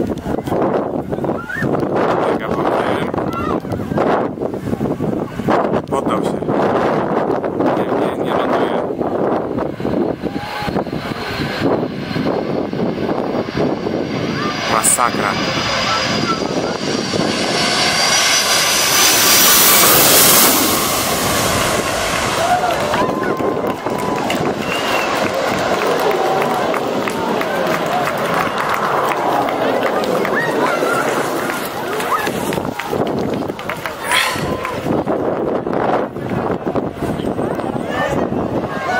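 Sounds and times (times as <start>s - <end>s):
airliner jet engines: 0.0s - 38.9s
crowd talking and calling out: 0.0s - 38.9s
thin steady engine whine: 0.0s - 38.9s
wind buffeting microphone: 0.0s - 38.9s.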